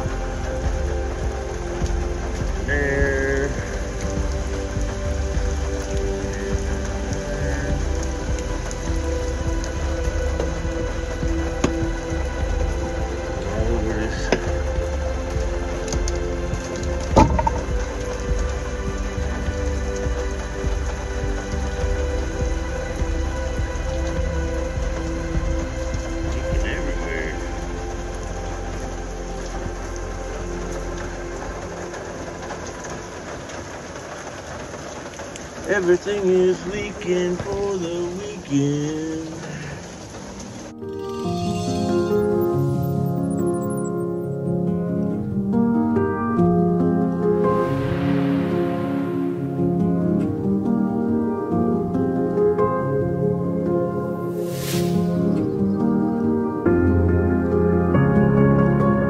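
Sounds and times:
rain on a metal roof: 0.0 - 59.0
slow piano music: 0.0 - 59.0.

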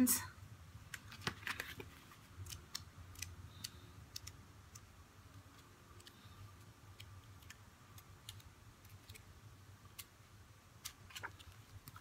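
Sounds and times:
paper pages flipping: 0.9 - 4.8, 7.0 - 10.1, 10.8 - 12.0.

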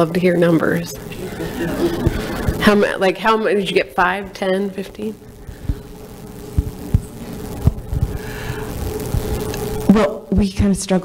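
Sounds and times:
steady hum: 0.0 - 11.0
microphone handling thumps: 2.0 - 2.7, 5.4 - 9.8.

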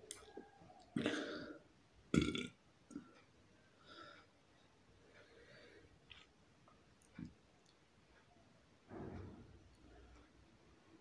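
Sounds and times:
man belching: 2.1 - 2.6.

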